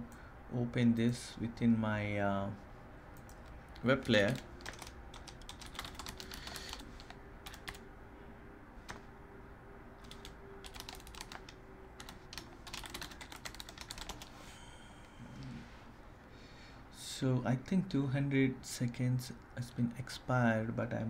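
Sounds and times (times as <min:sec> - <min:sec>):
computer keyboard typing: 0:03.2 - 0:07.8, 0:10.0 - 0:14.3.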